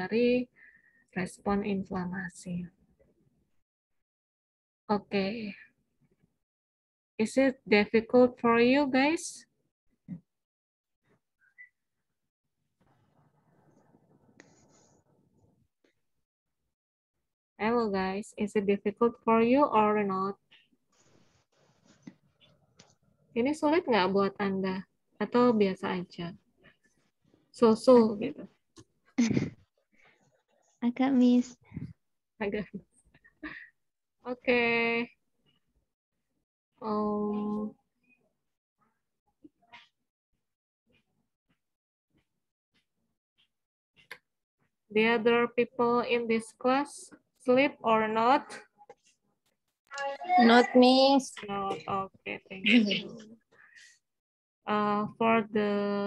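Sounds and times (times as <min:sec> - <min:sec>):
faint short room sounds: 0:12.8 - 0:16.0.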